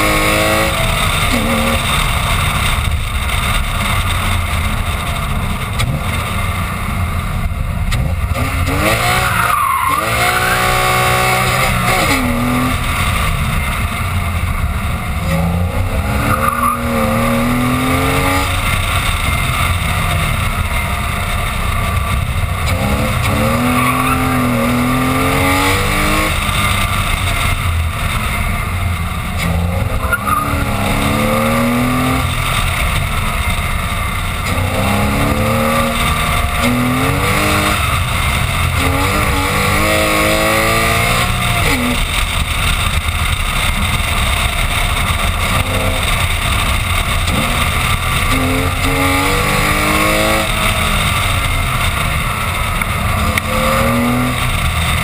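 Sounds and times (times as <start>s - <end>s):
car engine revving: 0.0s - 55.0s
wind and tyre noise: 0.0s - 55.0s.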